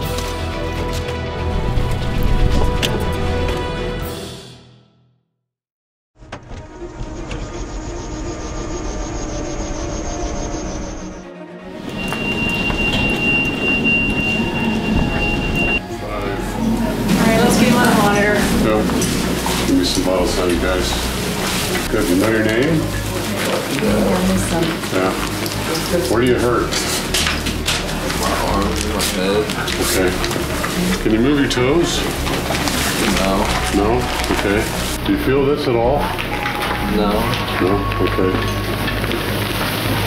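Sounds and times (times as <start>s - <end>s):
steady high whine: 6.8s - 25.5s
people talking indistinctly: 15.7s - 38.8s
rustling and handling noises: 17.2s - 35.0s.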